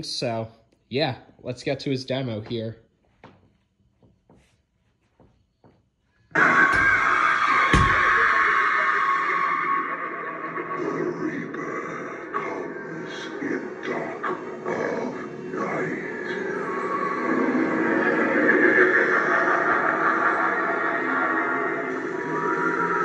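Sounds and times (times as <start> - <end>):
spooky music and effects: 6.3 - 23.0.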